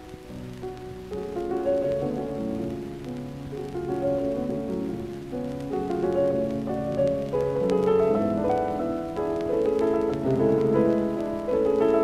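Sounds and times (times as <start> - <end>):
record surface hiss and crackle: 0.0 - 12.0.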